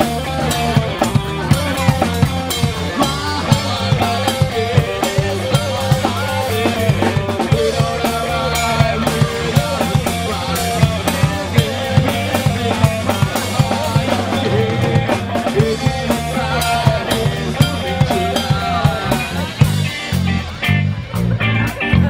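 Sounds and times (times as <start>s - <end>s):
bass: 0.0s - 22.0s
drum kit with cymbals: 0.0s - 22.0s
electric guitar line: 0.0s - 22.0s.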